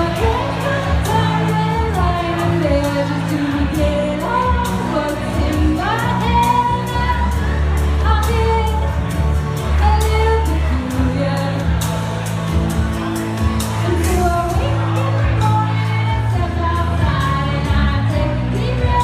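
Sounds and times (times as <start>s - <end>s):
woman singing through pa: 0.0s - 8.8s, 13.9s - 19.0s
backing music with steady beat: 0.0s - 19.0s.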